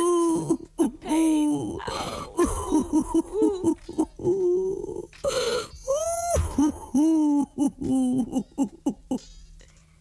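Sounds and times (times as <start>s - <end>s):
person moaning and groaning: 0.0s - 9.3s.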